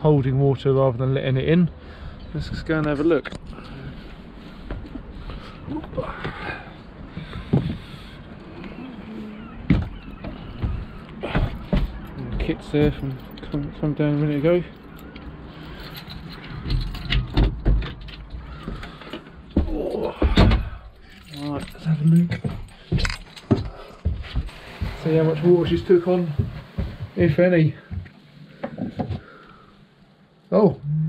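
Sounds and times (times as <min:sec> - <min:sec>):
footsteps on companionway: 0:02.0 - 0:29.4
heavy thumps: 0:09.6 - 0:13.3, 0:16.6 - 0:21.0.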